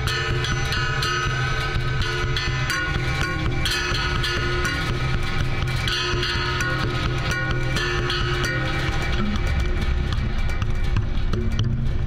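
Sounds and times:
constant low drone: 0:00.0 - 0:12.0
sustained tones: 0:00.0 - 0:12.0.

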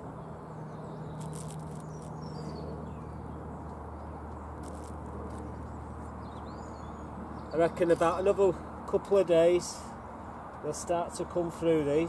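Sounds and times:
hand brushing soil: 0:01.2 - 0:02.1.

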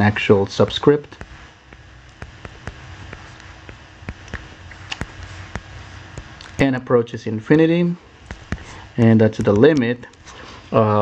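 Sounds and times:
faint low hum: 0:00.0 - 0:11.0
stylus tapping on touchscreen: 0:01.0 - 0:06.6, 0:08.2 - 0:08.8, 0:09.4 - 0:09.9.

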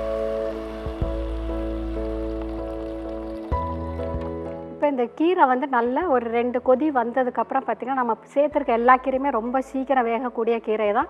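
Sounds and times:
water pouring and splashing: 0:00.0 - 0:04.6
background music with held notes: 0:00.0 - 0:10.6.

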